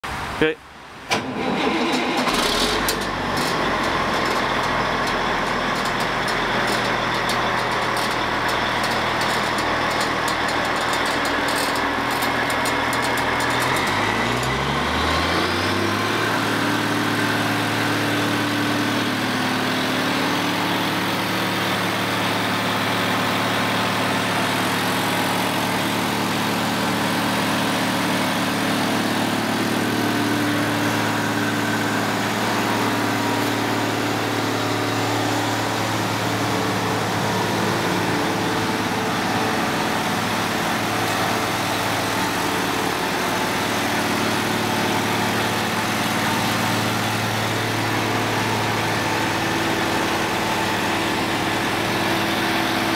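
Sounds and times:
diesel engine revving: 0:01.1 - 0:52.9.

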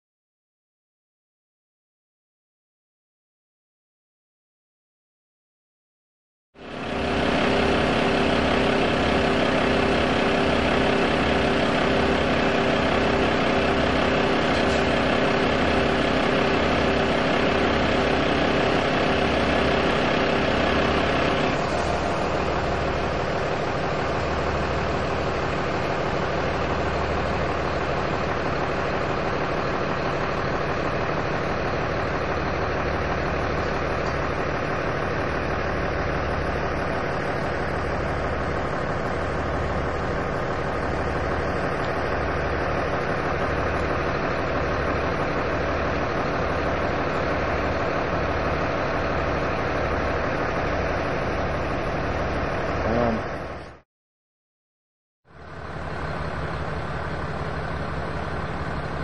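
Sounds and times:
heavy engine idling: 0:06.6 - 0:53.8, 0:55.3 - 0:59.0.

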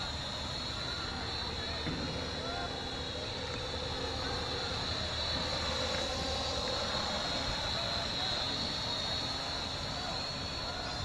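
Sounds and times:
quadcopter propellers whining: 0:00.0 - 0:11.0.

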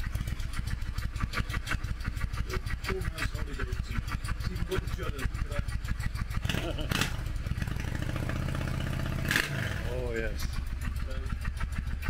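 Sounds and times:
motorcycle engine idling: 0:00.0 - 0:12.0.

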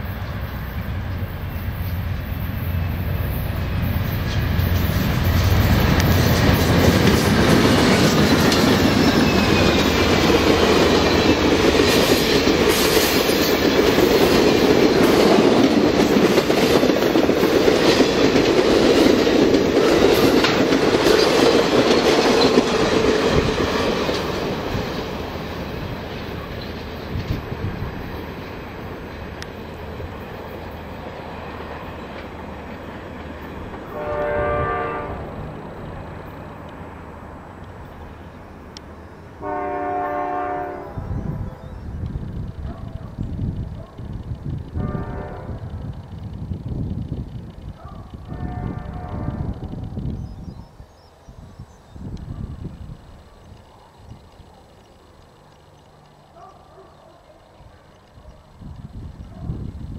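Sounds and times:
train wheels clattering on rails: 0:00.0 - 0:34.6
diesel locomotive running: 0:00.0 - 0:59.9
train horn note: 0:33.9 - 0:35.6, 0:39.4 - 0:41.5, 0:44.8 - 0:45.7, 0:48.3 - 0:49.8.

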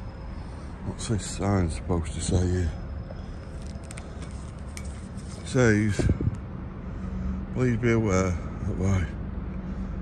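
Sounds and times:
town background noise: 0:00.0 - 0:10.0.

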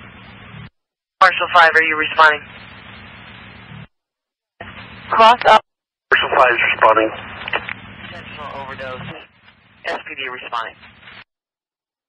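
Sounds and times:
scanner radio static hiss: 0:04.6 - 0:11.2.

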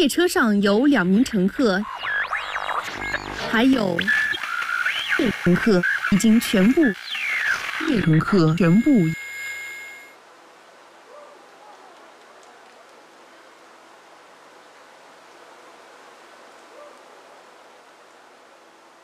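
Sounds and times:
faint steady hiss: 0:03.4 - 0:19.0.

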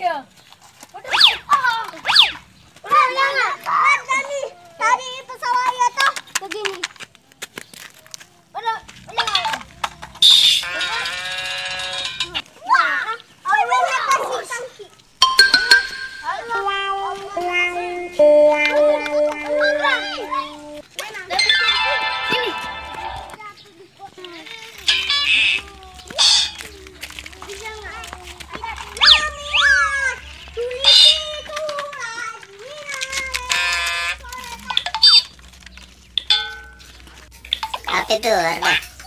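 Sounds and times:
children calling out: 0:01.0 - 0:05.7, 0:15.7 - 0:34.9
held notes stepping down: 0:15.2 - 0:20.8
music: 0:16.5 - 0:20.8.

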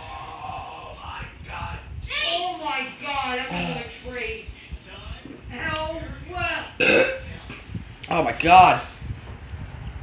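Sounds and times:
man burping or coughing: 0:06.8 - 0:07.2.

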